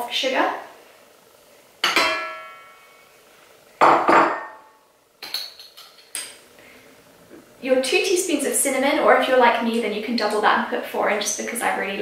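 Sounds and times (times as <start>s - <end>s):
steel mixer bowl knocks ringing: 1.8s - 2.6s.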